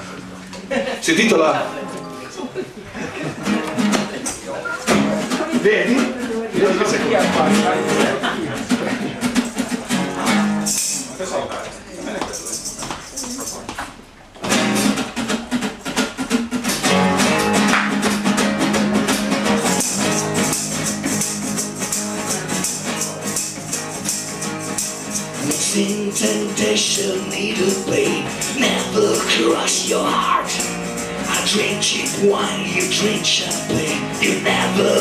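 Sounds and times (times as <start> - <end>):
acoustic guitars strumming: 0.0 - 11.2, 14.4 - 35.0
band playing: 1.2 - 2.4, 3.4 - 11.0, 14.4 - 35.0
tambourine: 19.7 - 26.0.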